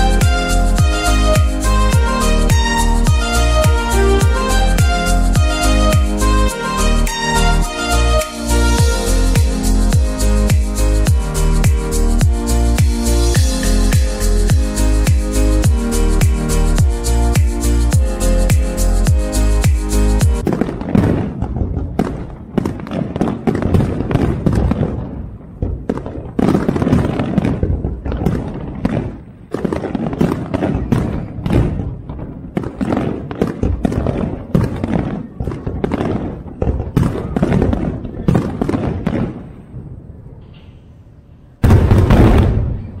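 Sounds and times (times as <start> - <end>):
fireworks booming: 0.0 - 19.3, 20.2 - 43.0.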